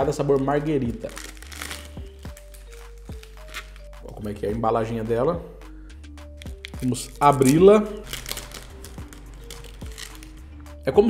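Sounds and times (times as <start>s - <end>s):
plastic wrapper crinkling: 0.0s - 3.9s, 6.4s - 10.4s
background music: 0.0s - 11.0s.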